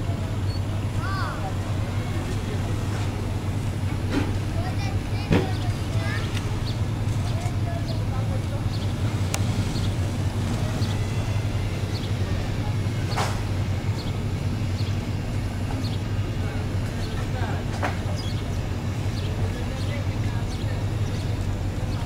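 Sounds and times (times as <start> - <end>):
diesel machinery drone: 0.0 - 22.0.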